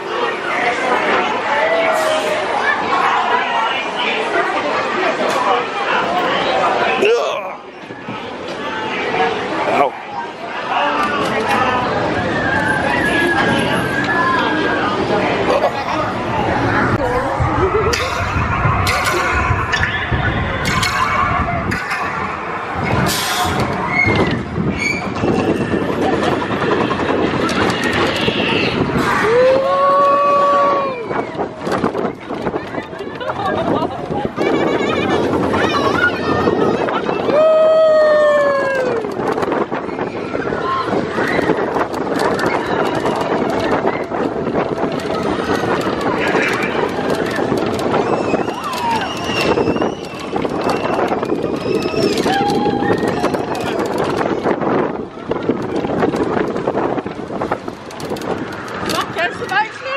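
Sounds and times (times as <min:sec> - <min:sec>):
roller coaster wheels rumbling: 0:00.0 - 0:59.9
riders screaming and shouting: 0:10.8 - 0:15.8, 0:16.8 - 0:31.8, 0:34.4 - 0:54.9
rushing air: 0:11.9 - 0:32.7.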